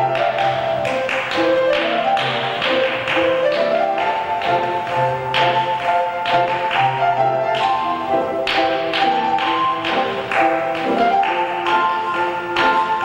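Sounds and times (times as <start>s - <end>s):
piano music with steady beat: 0.0s - 13.0s.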